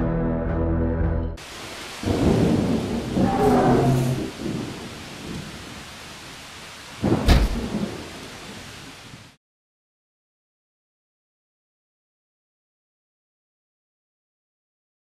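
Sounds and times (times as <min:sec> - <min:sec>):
steady rain: 0:01.4 - 0:09.4
rumble of thunder: 0:01.9 - 0:05.9, 0:07.0 - 0:08.3
sharp thunderclap: 0:02.0 - 0:05.5, 0:07.0 - 0:08.1.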